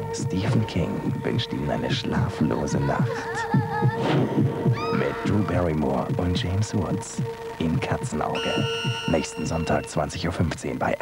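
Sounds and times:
low pulsing throb: 0.0s - 10.6s
steady droning hum: 0.0s - 11.0s
short rising high cry: 4.7s - 5.2s
wavering high tones: 4.7s - 10.4s.

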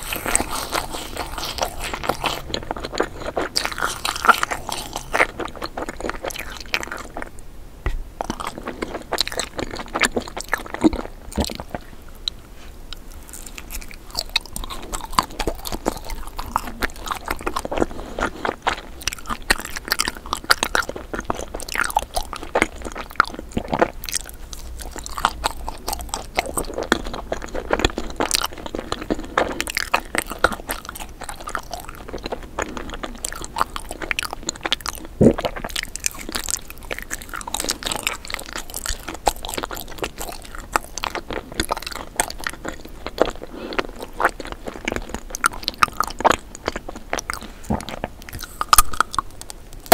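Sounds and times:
crunchy bites and chewing: 0.0s - 49.9s.

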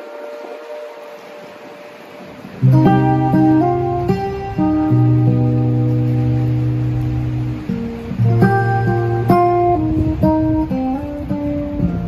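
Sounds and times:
acoustic guitar notes ringing: 0.0s - 12.0s
city street background noise: 0.0s - 12.0s.

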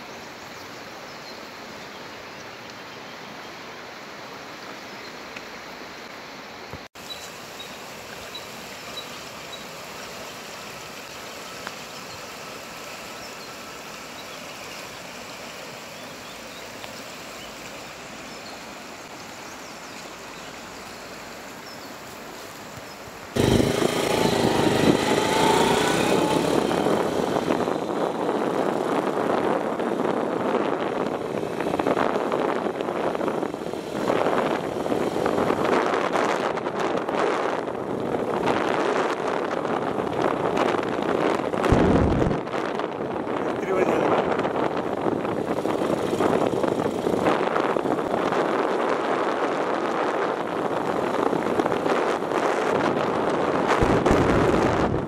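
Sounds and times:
river rushing over stones: 3.4s - 36.8s
wind buffeting microphone: 23.4s - 55.0s.

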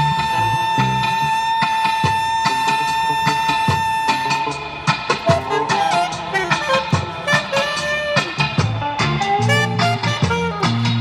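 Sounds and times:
saxophone long note: 0.0s - 8.7s
accompaniment with steady beat: 0.0s - 11.0s.

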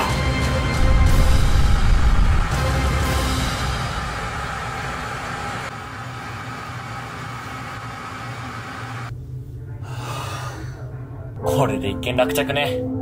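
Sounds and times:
low hum: 0.4s - 11.5s.

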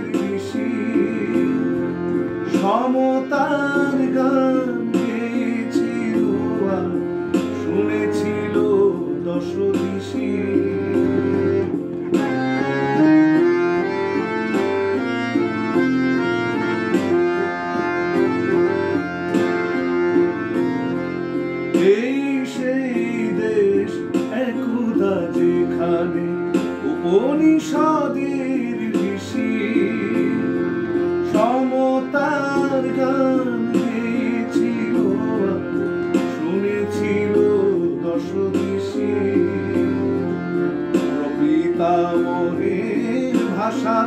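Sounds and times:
man singing: 0.0s - 12.3s, 21.8s - 44.0s
harmonium melody: 0.0s - 44.0s.

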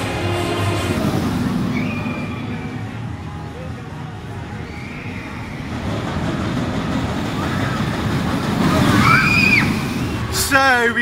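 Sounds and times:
roller coaster rushing rumble: 0.0s - 11.0s.

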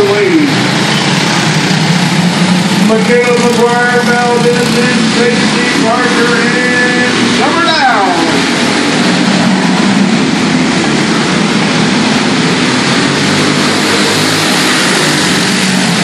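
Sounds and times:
racing kart engines: 0.0s - 16.0s.

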